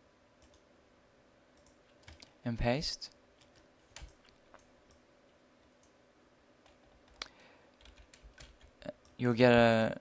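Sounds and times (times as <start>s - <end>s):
computer keyboard or mouse clicks: 0.4s - 0.6s, 1.6s - 2.3s, 3.4s - 5.0s.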